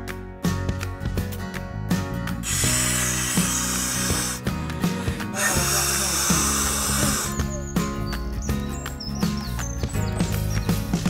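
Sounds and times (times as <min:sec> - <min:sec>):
background music with beat: 0:00.0 - 0:11.0
breath blown into valve: 0:02.4 - 0:07.4.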